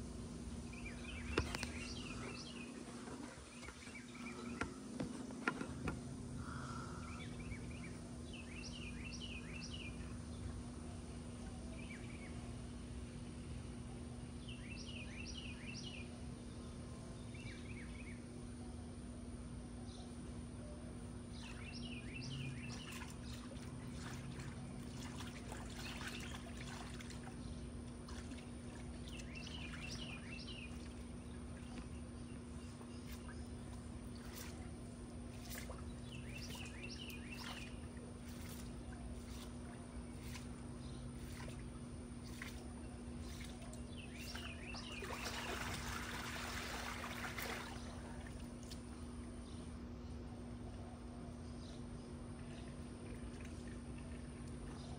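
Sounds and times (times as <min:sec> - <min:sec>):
steady low hum: 0:00.0 - 0:54.9
water trickling and splashing: 0:22.3 - 0:49.0, 0:52.4 - 0:54.8.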